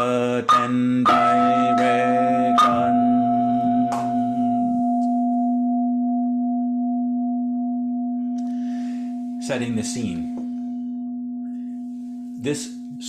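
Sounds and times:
low chanting voice: 0:00.0 - 0:04.9
singing bowl ringing: 0:00.0 - 0:13.0.

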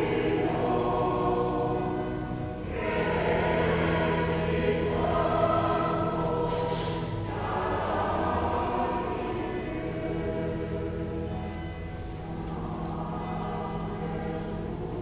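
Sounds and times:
choir singing sacred music: 0:00.0 - 0:15.0.

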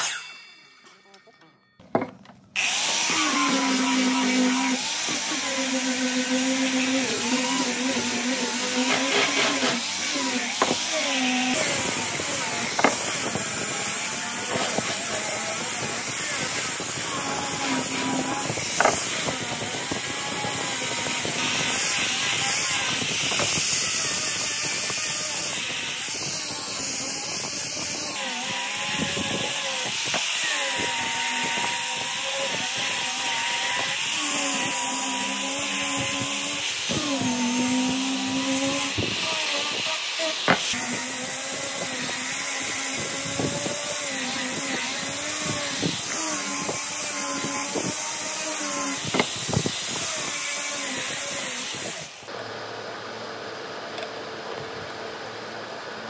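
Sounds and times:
angle grinder sanding wood: 0:02.6 - 0:52.3.

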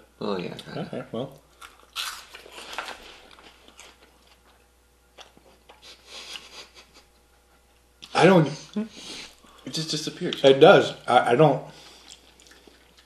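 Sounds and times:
crunching and chewing snack: 0:01.4 - 0:05.8, 0:11.8 - 0:13.0.

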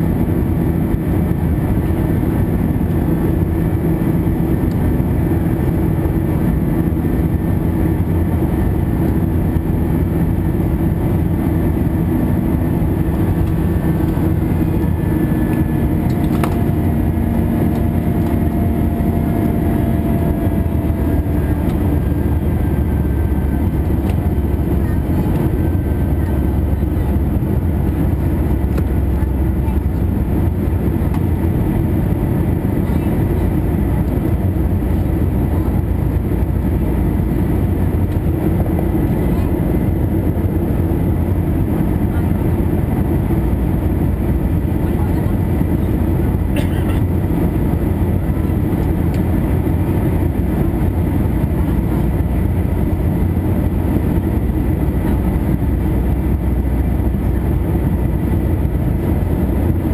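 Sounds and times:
jet engines roaring: 0:00.0 - 0:59.9
rushing air in cabin: 0:00.0 - 0:59.9.

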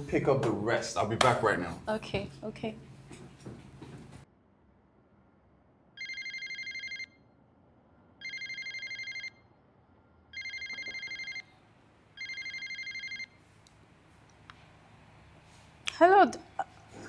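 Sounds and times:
phone bell ringtone: 0:06.0 - 0:07.2, 0:08.2 - 0:09.5, 0:10.3 - 0:11.5, 0:12.2 - 0:13.4.

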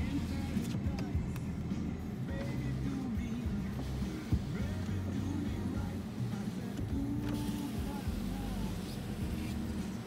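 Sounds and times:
power window motor humming: 0:02.3 - 0:10.0.

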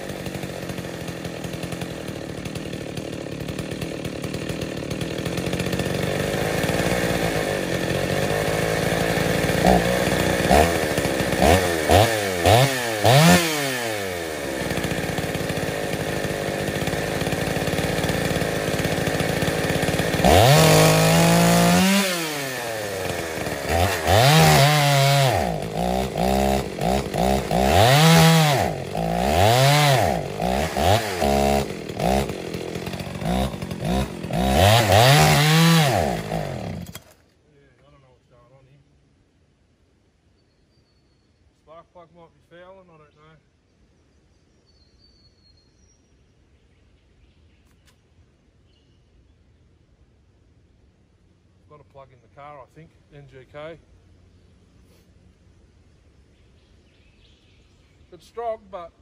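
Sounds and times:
chainsaw cutting log: 0:00.0 - 0:37.3.

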